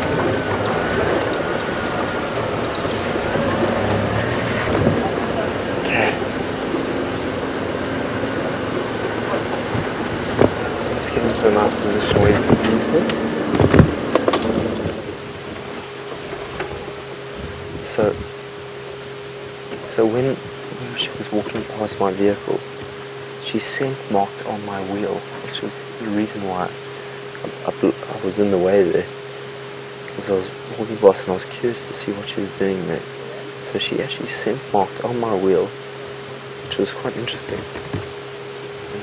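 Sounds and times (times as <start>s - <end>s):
wind noise: 0.0s - 18.5s
vehicle engine hum: 0.0s - 39.0s.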